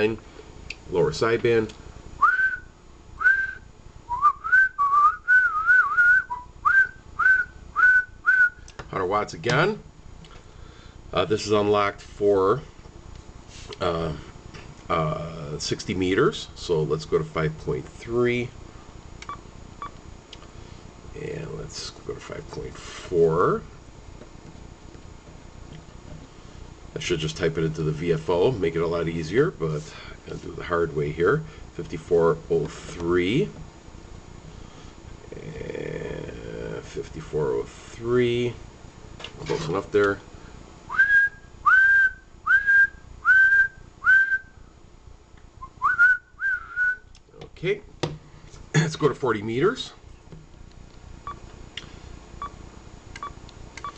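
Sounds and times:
person whistling short swooping notes: 0:45.6 - 0:47.0.

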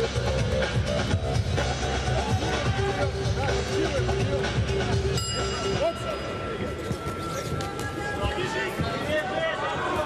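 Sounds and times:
voices in arena: 0:00.2 - 0:10.0
boxing ring bell ringing: 0:05.1 - 0:07.4.

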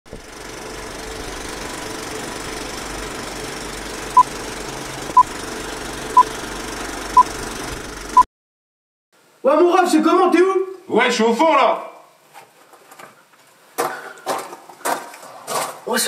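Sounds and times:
rumbling machine noise: 0:00.1 - 0:08.2.

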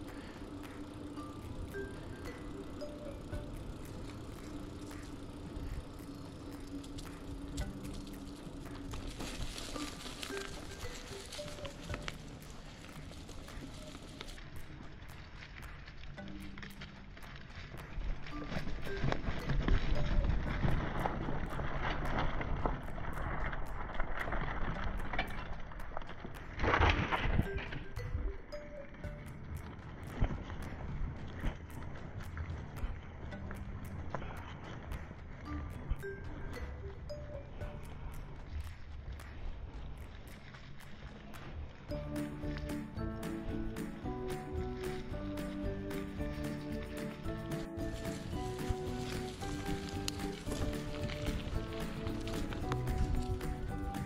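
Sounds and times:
background music with held notes: 0:00.0 - 0:14.3, 0:16.0 - 0:38.8, 0:41.9 - 0:54.0
bicycle rolling over dirt trail: 0:00.0 - 0:54.0.

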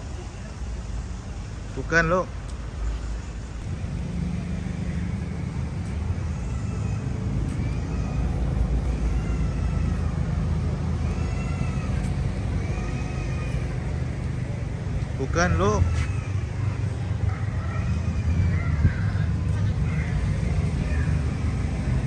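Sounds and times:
low rumble of traffic: 0:00.0 - 0:22.0
toddler crying: 0:05.1 - 0:21.4.

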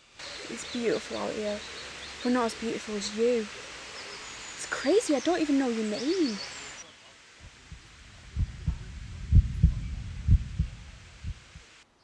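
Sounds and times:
heartbeat thumps: 0:07.4 - 0:11.6.

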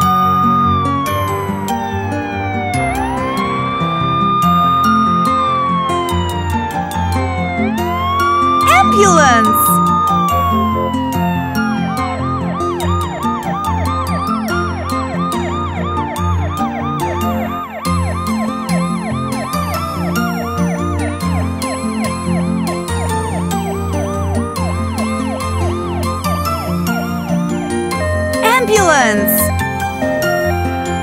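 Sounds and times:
cartoon ambulance siren wailing: 0:08.7 - 0:09.8, 0:28.4 - 0:29.5.

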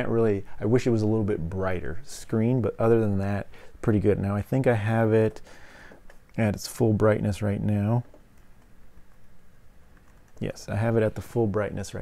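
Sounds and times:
fingers tapping laptop touchpad: 0:08.1 - 0:10.5.

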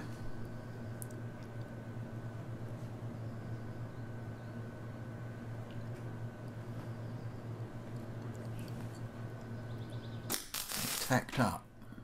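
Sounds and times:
steady low hum: 0:00.0 - 0:12.0
welder hissing crackle: 0:10.3 - 0:11.2.

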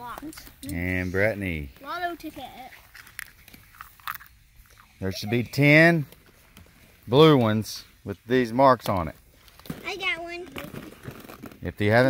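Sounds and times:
plastic eggs clicking and rustling: 0:01.8 - 0:05.0, 0:08.8 - 0:11.9.

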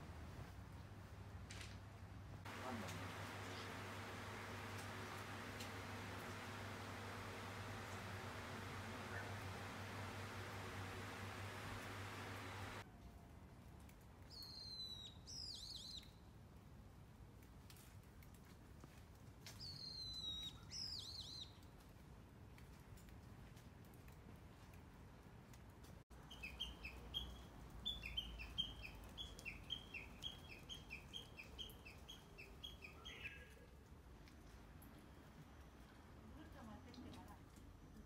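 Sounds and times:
faint birdsong: 0:02.5 - 0:12.8, 0:26.2 - 0:33.8.

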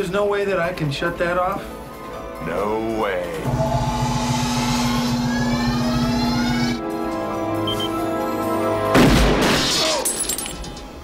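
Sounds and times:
film score music: 0:00.0 - 0:09.8
rising whines: 0:03.4 - 0:08.2
low pulsing hum: 0:03.5 - 0:06.8.

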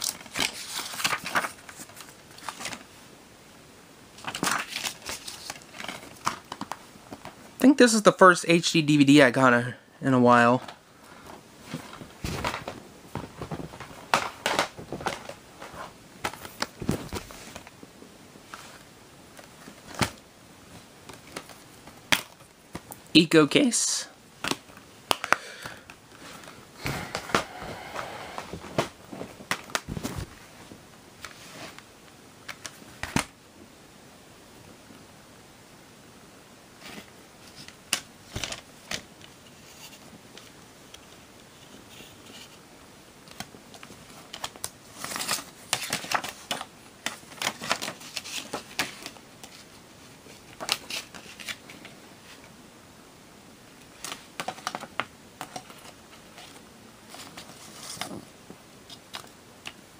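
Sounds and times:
paper rustling: 0:00.0 - 0:02.9, 0:04.2 - 0:07.2, 0:11.6 - 0:17.8, 0:43.3 - 0:52.5, 0:53.9 - 0:58.3
plastic disc cases clicking: 0:11.8 - 0:17.7, 0:24.4 - 0:29.9, 0:32.4 - 0:33.3, 0:54.0 - 0:58.3.

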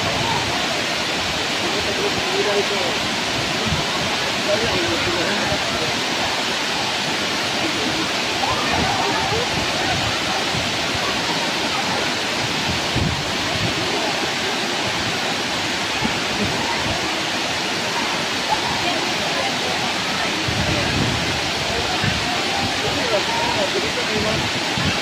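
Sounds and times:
waterfalls splashing into pool: 0:00.0 - 0:25.0.

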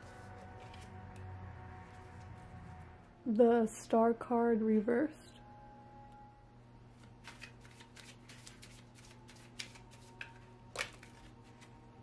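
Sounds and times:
cards flicking and tapping on table: 0:07.0 - 0:11.7.

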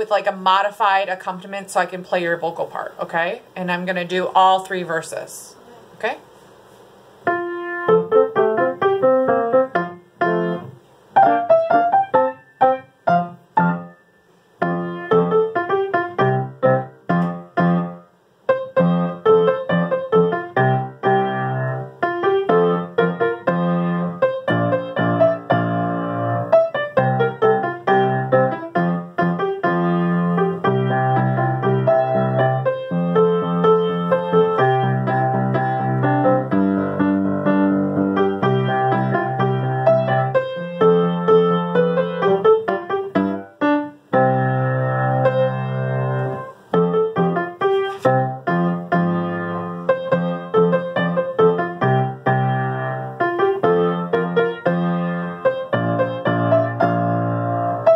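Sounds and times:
solo piano playing: 0:07.2 - 0:57.9.

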